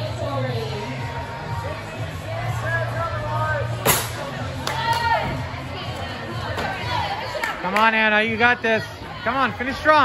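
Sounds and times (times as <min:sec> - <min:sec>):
crowd chatter: 0:00.0 - 0:10.0
music: 0:00.0 - 0:10.0.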